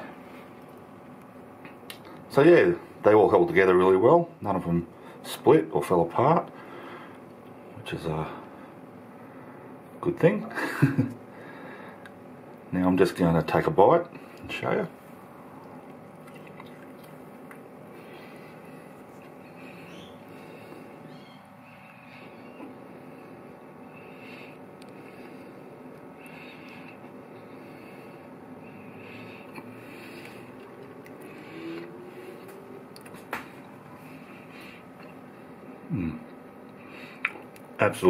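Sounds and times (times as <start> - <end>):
low room hum: 0.0 - 38.0
person chewing: 15.5 - 20.6, 29.1 - 35.3, 36.2 - 37.7.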